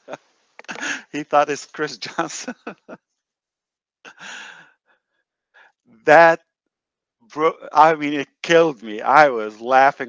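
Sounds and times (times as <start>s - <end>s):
faint short breaths: 0.7s - 1.2s, 4.1s - 5.8s
man's breathy exhale of laughter: 0.7s - 1.2s, 4.1s - 4.7s.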